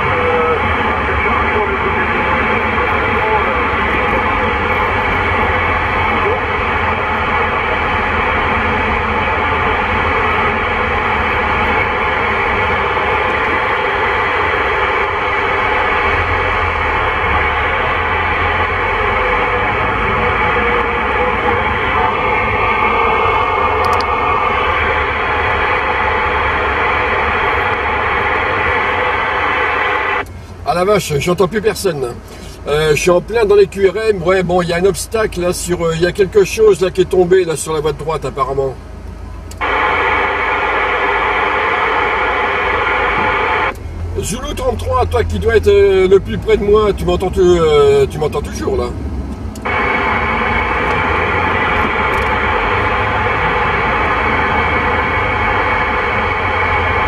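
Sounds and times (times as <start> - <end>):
radio static and interference: 0.0 - 38.8, 39.6 - 49.0, 49.6 - 57.0
unreadable radio voices: 0.0 - 38.8, 39.6 - 49.0, 49.6 - 57.0.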